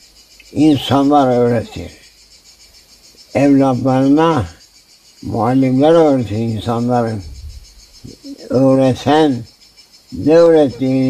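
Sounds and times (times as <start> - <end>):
high-pitched chirring hiss: 0.0 - 11.0
man speaking: 0.5 - 2.0, 3.4 - 4.6, 5.2 - 7.3, 8.0 - 9.5, 10.2 - 11.0.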